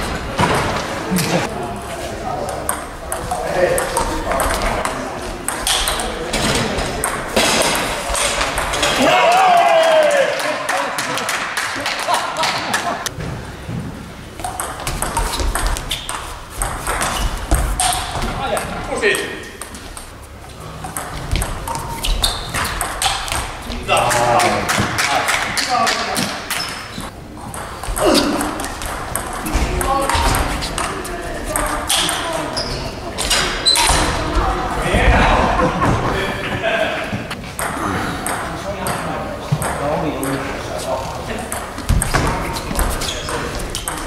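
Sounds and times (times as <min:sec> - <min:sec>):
table tennis balls clicking: 0:14.4 - 0:18.8, 0:20.8 - 0:32.6
voices talking: 0:17.0 - 0:44.0.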